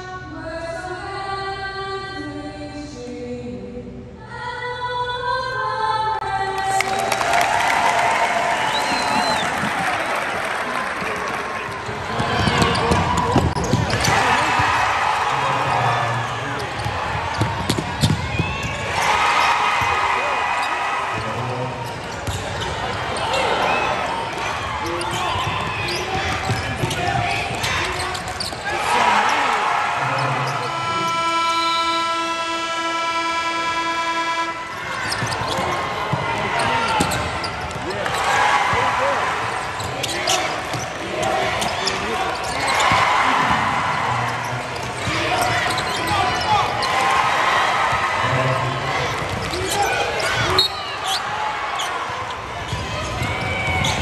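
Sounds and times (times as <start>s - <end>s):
crowd voices: 6.3s - 54.0s
basketball bouncing on court: 11.2s - 14.8s, 16.6s - 19.0s, 21.1s - 22.9s, 24.3s - 28.7s, 35.0s - 39.0s, 44.4s - 47.2s, 49.0s - 51.4s, 52.0s - 54.0s
steady horn: 30.5s - 34.9s.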